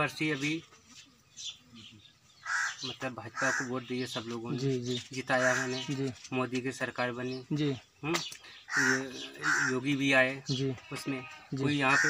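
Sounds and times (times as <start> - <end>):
crow cawing: 2.4 - 3.8, 5.4 - 5.8, 8.7 - 9.9.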